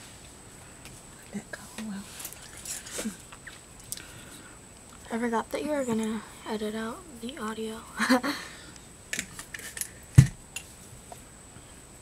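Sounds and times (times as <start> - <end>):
faint high-pitched whine: 0.0 - 12.0
soft hissy sounds: 0.0 - 12.0
whispering and murmuring: 1.2 - 2.7.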